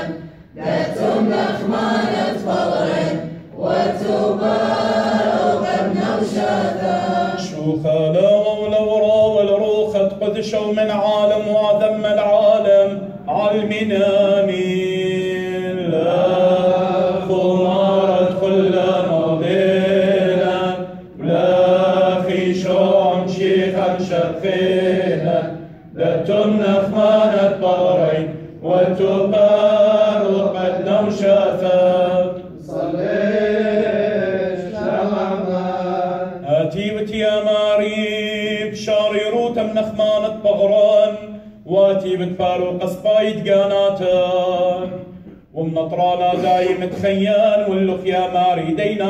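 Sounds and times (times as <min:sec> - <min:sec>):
man chanting: 0:07.4 - 0:16.5, 0:35.7 - 0:49.0.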